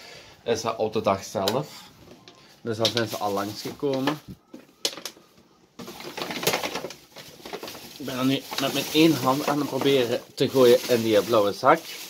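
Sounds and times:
plastic bag crinkling: 2.7s - 12.0s
plastic bottles knocking: 3.8s - 11.2s.

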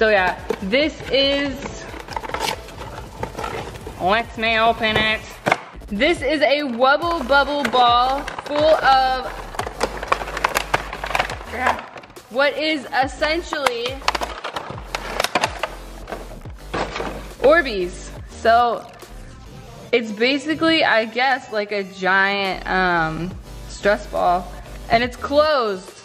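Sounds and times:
plastic packaging crinkling: 0.3s - 4.0s, 6.6s - 12.2s, 13.5s - 17.2s
cardboard box rustling and scraping: 0.4s - 5.6s.

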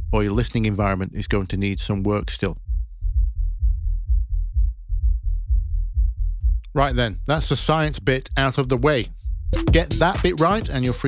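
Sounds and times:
deep kick drum and bass thumps: 0.0s - 11.0s.

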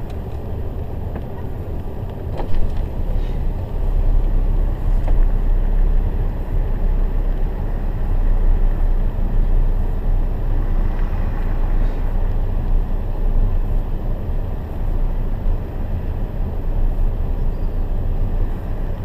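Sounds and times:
steady low rumble: 0.0s - 19.0s
cars passing on wet road: 10.3s - 13.0s.

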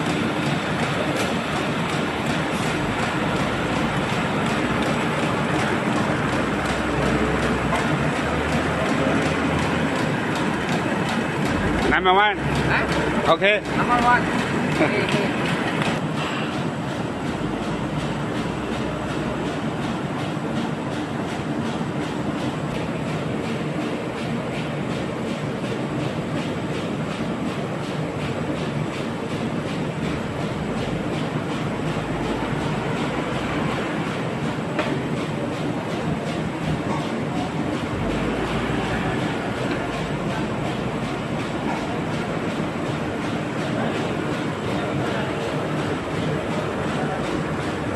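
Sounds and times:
paper sheeter machine running: 0.0s - 47.9s.

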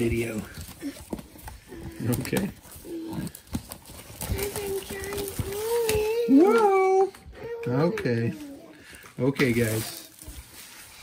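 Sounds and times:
shrink wrap crinkling and clicking: 0.0s - 11.0s.

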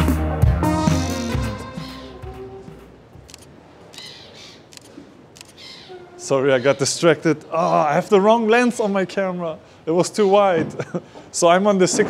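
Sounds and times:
background music: 0.0s - 3.1s
faint outdoor ambience: 0.0s - 12.0s
faint bird calls: 1.7s - 2.9s, 3.9s - 8.1s
camera shutter clicks: 3.2s - 5.7s.

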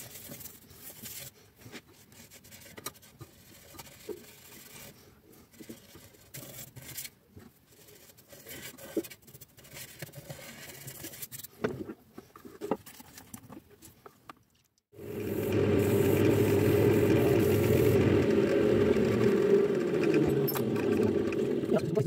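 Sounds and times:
abrasive pad hissing on wood: 15.0s - 18.2s
wood lathe running: 15.0s - 22.0s.

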